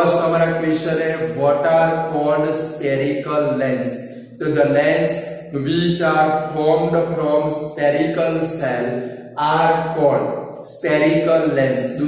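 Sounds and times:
man reciting slowly: 0.0s - 12.0s.

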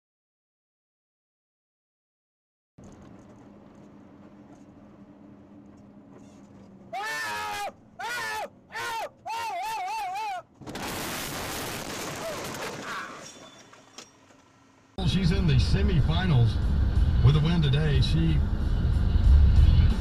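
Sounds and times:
low vehicle hum: 2.8s - 7.0s, 14.2s - 20.0s
person screaming: 6.9s - 10.5s
loud crash: 10.6s - 13.7s.

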